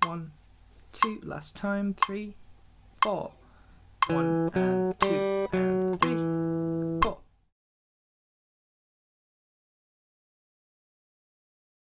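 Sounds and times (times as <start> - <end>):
string damping click: 4.0 - 6.4
guitar note: 4.0 - 7.2.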